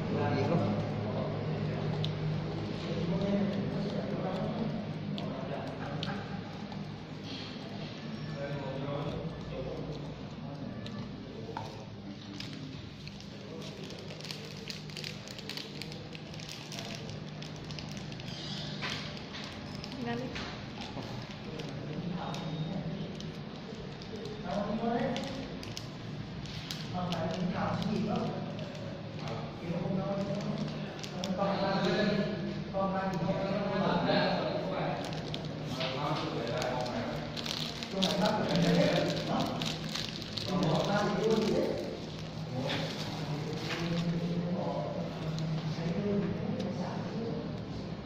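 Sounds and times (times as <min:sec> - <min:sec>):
people talking: 0:26.9 - 0:47.9.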